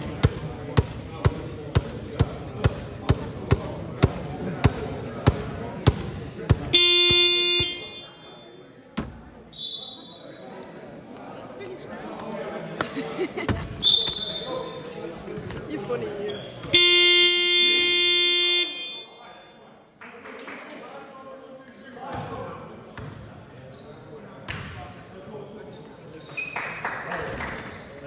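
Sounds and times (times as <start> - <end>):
scoreboard horn buzzing: 6.7 - 8.3, 16.7 - 19.1
short high whistle-like tones: 9.5 - 10.4, 13.8 - 14.8.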